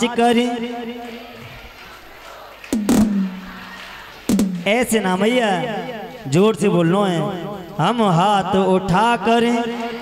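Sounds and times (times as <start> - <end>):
crowd murmur: 1.1 - 4.9
sharp knock: 2.8 - 3.6.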